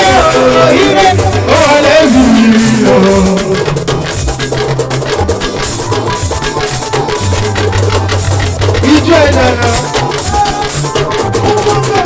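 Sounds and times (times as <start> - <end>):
bass line: 0.0 - 10.4
drums and percussion: 0.0 - 12.0.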